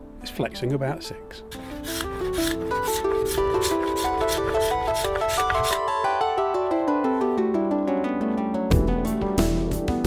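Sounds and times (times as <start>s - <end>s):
plucked melody: 0.7s - 10.0s
hand sanding wood: 1.5s - 5.8s.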